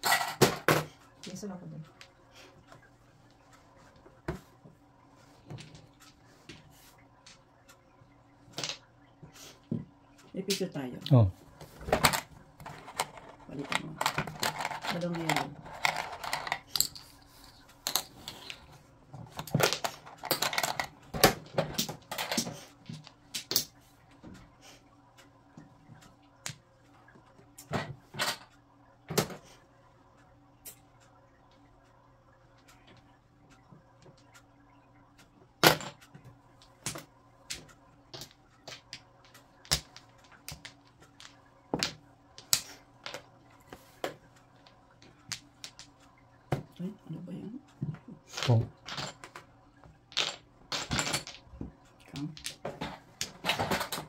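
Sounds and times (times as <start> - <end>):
faint steady hum: 0.0 - 54.0
mahjong tiles clacking: 11.9 - 23.7, 35.8 - 43.4, 50.1 - 54.0.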